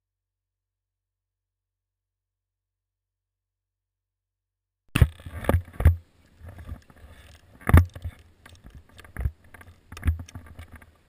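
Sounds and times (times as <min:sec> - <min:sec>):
muffled thumps and knocks: 0:04.9 - 0:11.0.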